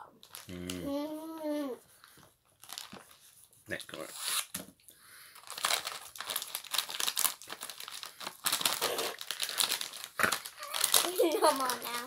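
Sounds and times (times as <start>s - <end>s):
snack packets crinkling: 0.2s - 0.9s, 2.0s - 4.5s, 5.3s - 12.0s.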